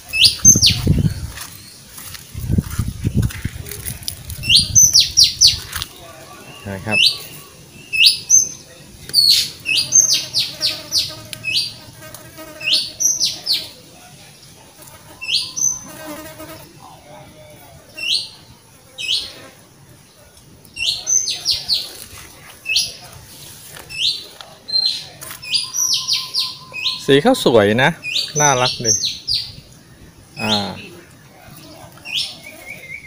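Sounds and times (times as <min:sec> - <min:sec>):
bird chirping: 0:00.0 - 0:03.4, 0:04.4 - 0:11.8, 0:15.1 - 0:16.5, 0:23.8 - 0:33.0.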